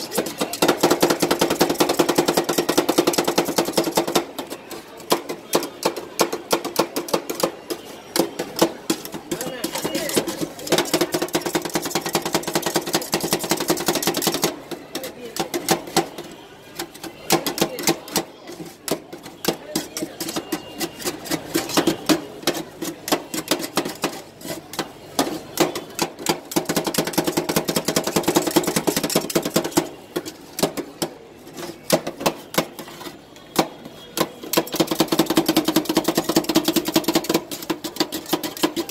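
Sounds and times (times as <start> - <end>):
metal spatulas clacking on steel: 0.0 - 33.2, 34.2 - 38.9
metal spatulas clattering on steel: 35.5 - 38.9.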